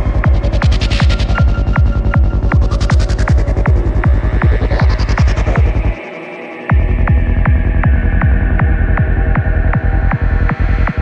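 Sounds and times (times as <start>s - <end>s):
rolling bassline: 0.0s - 6.0s, 6.7s - 11.0s.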